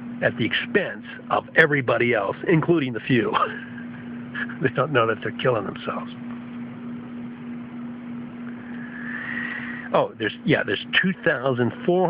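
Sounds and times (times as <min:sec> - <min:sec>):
faint whine rising in pitch: 0:00.0 - 0:12.0
steady low hum: 0:00.0 - 0:12.0.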